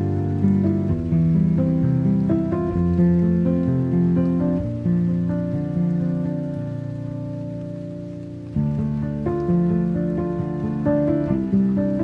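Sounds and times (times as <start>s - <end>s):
slow classical piano music: 0.0s - 12.0s.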